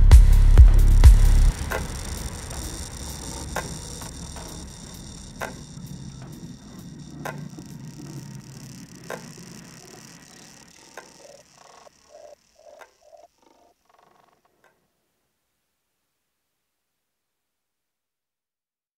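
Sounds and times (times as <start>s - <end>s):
kick drum and bass: 0.0s - 4.2s
electronic music tail: 0.0s - 11.9s
sharp tick: 0.6s - 13.6s.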